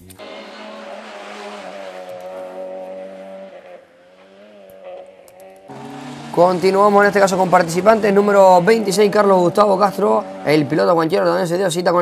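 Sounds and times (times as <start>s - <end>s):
car engine at high revs: 0.0s - 12.0s.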